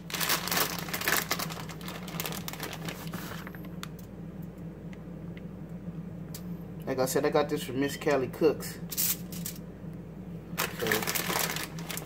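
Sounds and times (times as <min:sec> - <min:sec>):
plastic bag crinkling: 0:00.0 - 0:03.9, 0:10.6 - 0:12.0.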